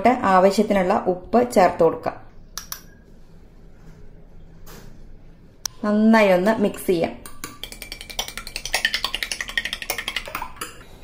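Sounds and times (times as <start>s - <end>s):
spoon clinking against bowl: 7.2s - 10.9s.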